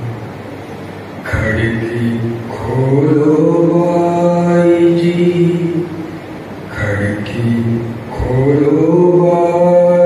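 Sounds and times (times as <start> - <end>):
man singing unaccompanied: 1.2 - 10.0.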